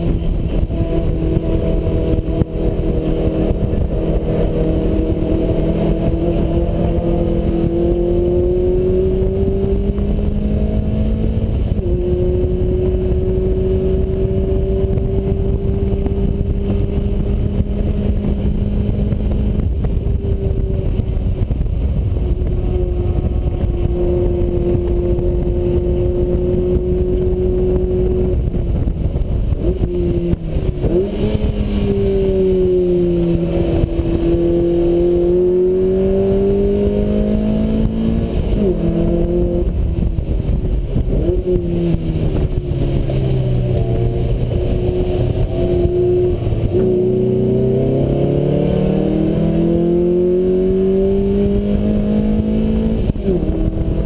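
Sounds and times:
car engine revving hard: 0.0 - 21.0, 29.5 - 54.0
wind rush: 0.0 - 54.0.

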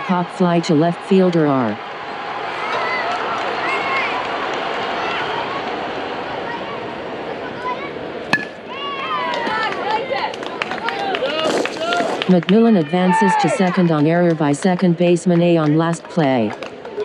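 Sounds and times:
crowd shouting and cheering: 0.0 - 14.5
spectators chattering: 0.0 - 17.0
bat cracking ball: 8.3 - 8.7.

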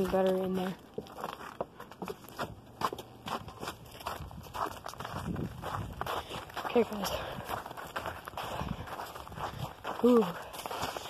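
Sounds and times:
crunchy footsteps: 0.0 - 11.0.

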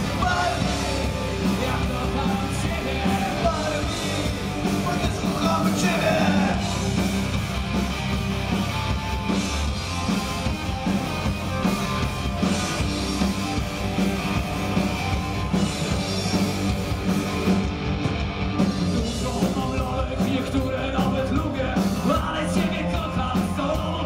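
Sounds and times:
punk rock band playing: 0.0 - 24.0.

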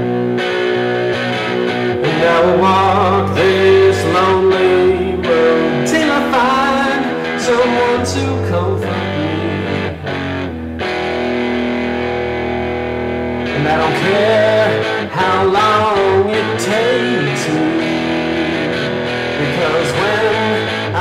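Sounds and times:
blues guitar with bending notes: 0.0 - 21.0.

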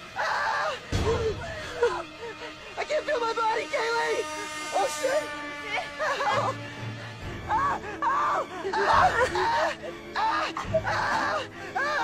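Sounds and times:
person crying out in pain: 0.1 - 2.5, 7.4 - 12.0
low sustained note: 1.0 - 8.0.

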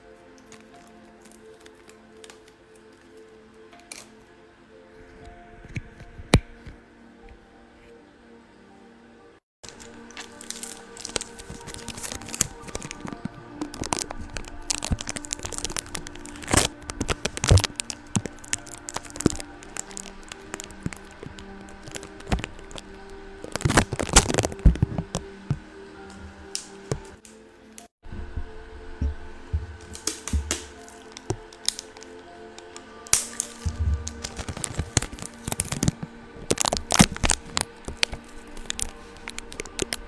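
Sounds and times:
soft background music: 0.0 - 40.0
sticky tape crackling on microphone: 9.6 - 27.4, 28.1 - 40.0.

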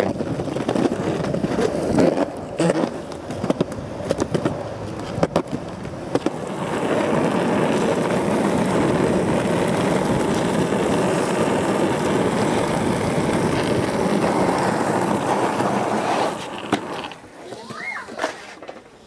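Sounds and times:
skateboard wheels rolling on asphalt: 0.0 - 19.0.

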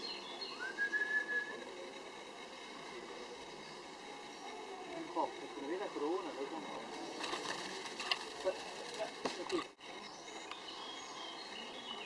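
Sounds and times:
small birds chirping: 0.0 - 12.0
rising whistled note: 0.5 - 1.6.

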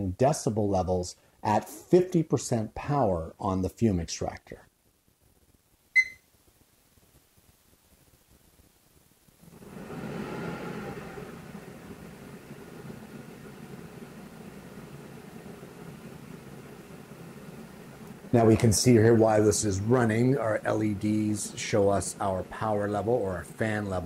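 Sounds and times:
short beep: 6.0 - 6.2
extraction fan running: 9.4 - 24.0.

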